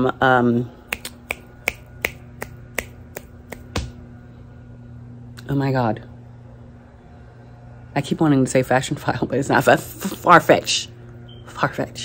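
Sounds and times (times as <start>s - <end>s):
fingers snapping: 0.9s - 4.0s.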